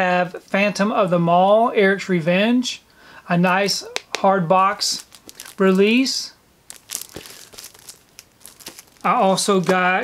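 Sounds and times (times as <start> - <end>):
plastic shrink-wrap crinkling: 4.9 - 6.1, 6.7 - 10.0.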